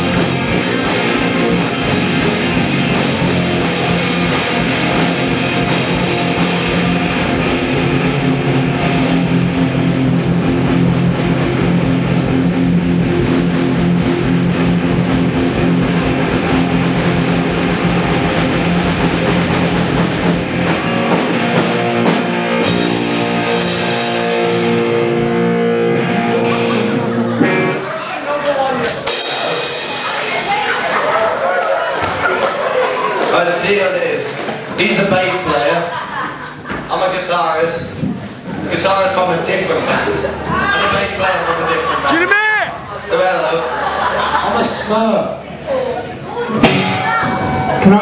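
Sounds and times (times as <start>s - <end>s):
drum kit: 0.0s - 27.9s, 28.7s - 32.8s, 46.5s - 48.0s
distorted electric guitars: 0.0s - 28.0s, 28.8s - 31.7s, 46.4s - 48.0s
bass guitar: 0.0s - 33.4s, 37.7s - 48.0s.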